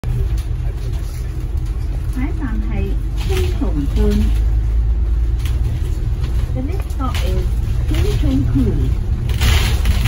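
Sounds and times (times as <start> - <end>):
moving bus rumble: 0.0 - 10.0.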